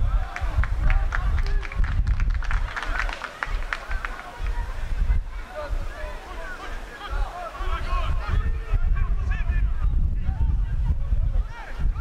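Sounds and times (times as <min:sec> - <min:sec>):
voices calling out: 0:02.5 - 0:10.0.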